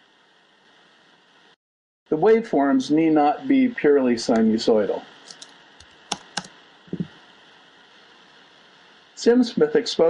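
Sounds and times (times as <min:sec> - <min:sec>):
computer keyboard keystrokes: 0:05.3 - 0:07.1.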